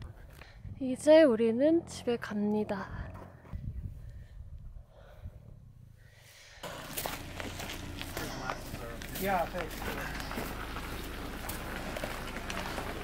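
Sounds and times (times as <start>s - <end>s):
footsteps on grass and snow: 6.6s - 13.0s
low outdoor rumble: 6.6s - 13.0s.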